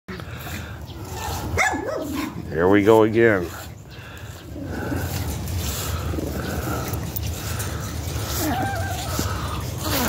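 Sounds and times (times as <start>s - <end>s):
dog yelping: 1.2s - 2.4s, 8.3s - 10.0s.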